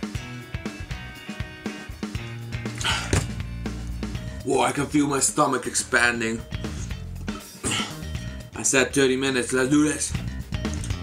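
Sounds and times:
music with steady beat: 0.0s - 4.5s, 6.4s - 8.6s, 10.1s - 11.0s.

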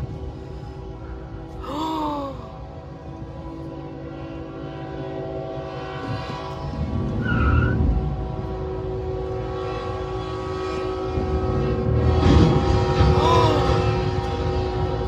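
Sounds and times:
train horn blast: 0.0s - 15.0s.

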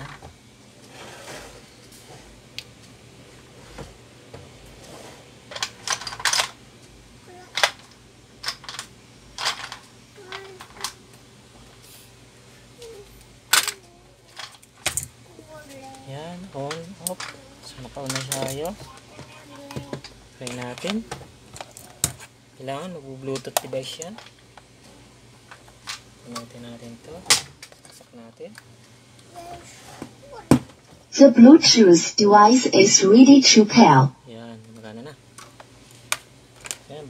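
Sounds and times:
steady low hum: 31.1s - 36.5s
person speaking: 31.2s - 34.1s.

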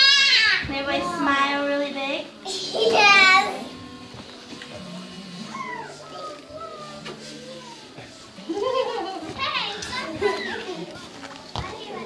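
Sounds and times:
children shouting and squealing: 0.0s - 0.7s, 5.4s - 8.2s, 9.1s - 11.0s.

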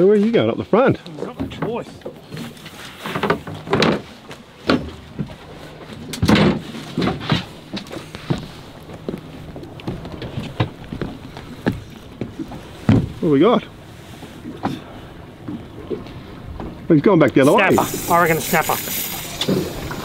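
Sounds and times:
knocks and thuds on boat: 1.2s - 13.6s, 14.4s - 16.9s.

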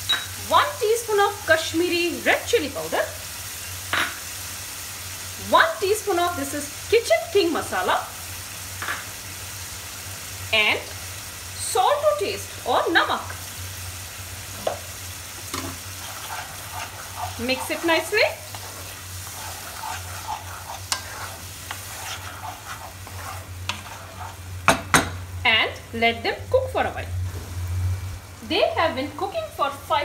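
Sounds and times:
sauce sizzling in oil: 0.0s - 30.0s
steady low hum: 12.5s - 29.1s
spatula scraping through gravy: 14.5s - 24.7s.

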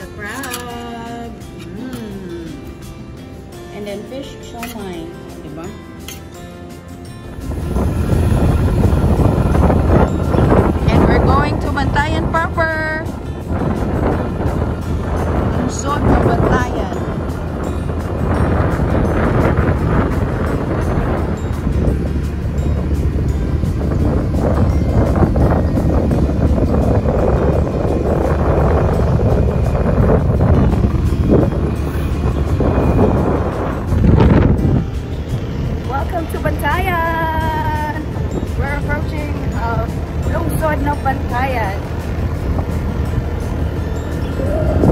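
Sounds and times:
background music: 0.0s - 44.9s
wind buffeting microphone: 3.8s - 44.9s
motorcycle engine running: 7.2s - 44.9s.

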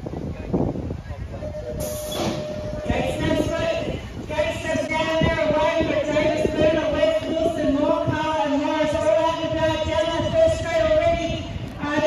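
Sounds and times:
crowd noise: 0.9s - 12.0s
steady held tone: 1.4s - 3.8s.

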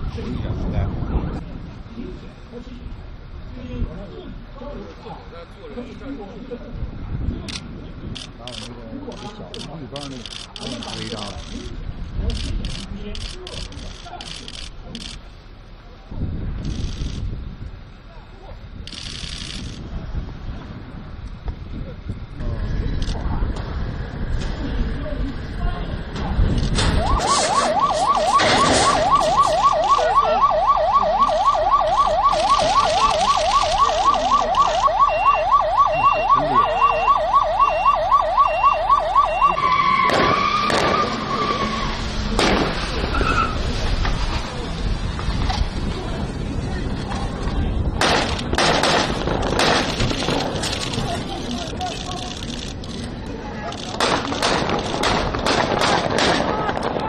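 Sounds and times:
dense noisy background: 0.0s - 57.0s
loud sharp bangs: 26.5s - 35.0s, 39.5s - 43.2s, 48.0s - 51.1s, 53.9s - 57.0s
police siren yelping: 26.8s - 41.9s.

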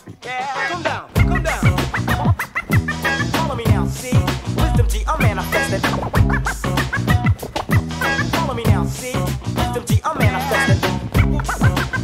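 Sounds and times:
hip-hop beat: 0.0s - 12.0s
record scratching on turntable: 0.0s - 12.0s.

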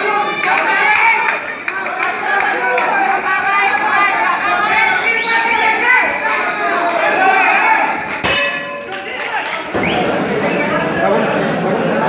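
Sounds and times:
crowd chatter: 0.0s - 12.0s
boxing ring bell: 8.2s - 9.3s.

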